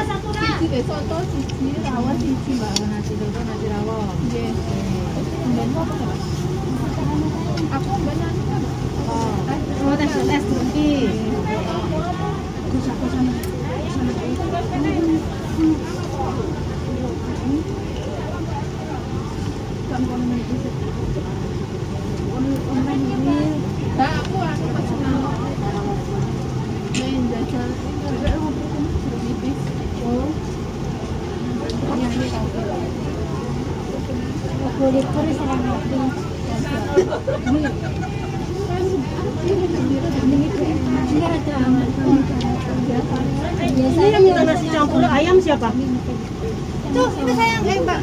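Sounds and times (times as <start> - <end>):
people talking: 0.0 - 48.0.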